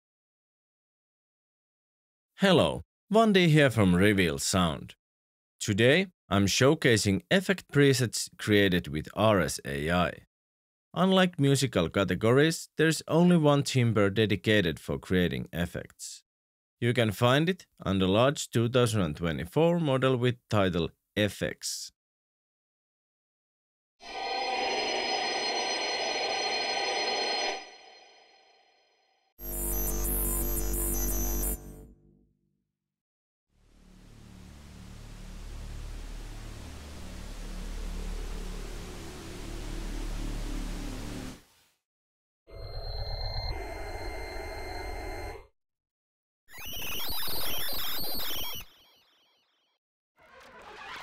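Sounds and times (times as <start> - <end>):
dense sustained synthesizer tones: 24.0 - 28.1.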